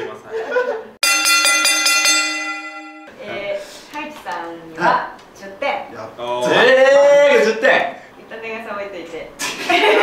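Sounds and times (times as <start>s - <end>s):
bell strikes ringing: 1.0s - 3.2s.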